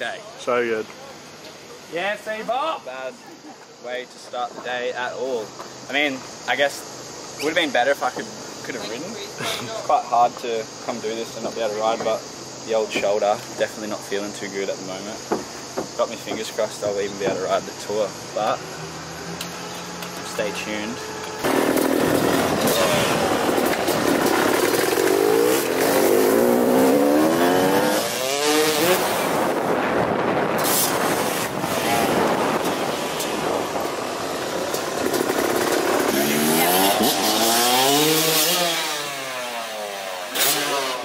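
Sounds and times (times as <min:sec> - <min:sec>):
dirt bike engine revving: 0:18.2 - 0:41.0.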